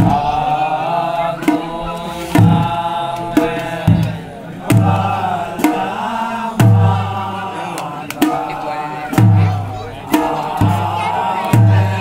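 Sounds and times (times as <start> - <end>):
men singing together: 0.0 - 12.0
drum struck with sticks: 1.4 - 7.2, 8.0 - 12.0.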